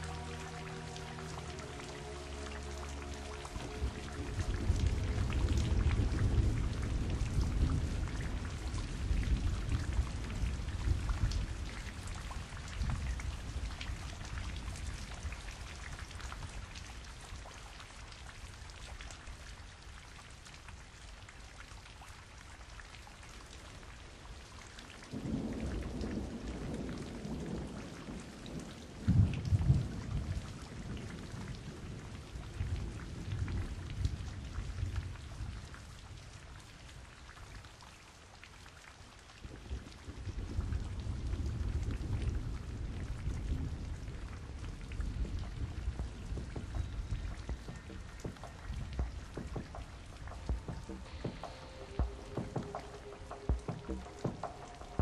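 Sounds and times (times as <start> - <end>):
steady rain: 0.0 - 55.0
rolling thunder: 3.0 - 15.7, 25.2 - 35.6, 39.5 - 55.0.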